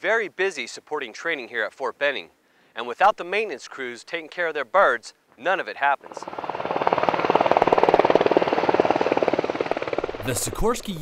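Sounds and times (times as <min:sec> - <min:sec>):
helicopter rotor beating: 0:06.0 - 0:11.0.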